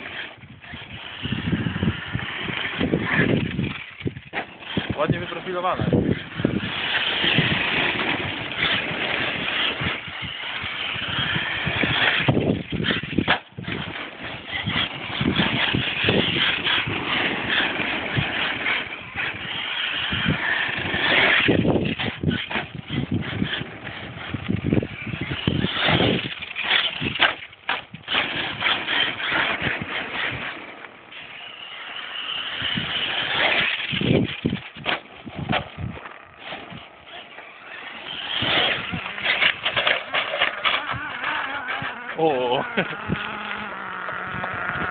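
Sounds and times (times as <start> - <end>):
electric rc truck running on gravel: 0.0 - 44.9.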